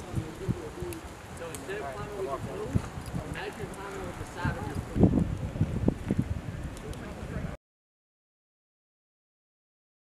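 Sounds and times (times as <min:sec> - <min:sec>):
people talking in background: 0:00.0 - 0:07.6.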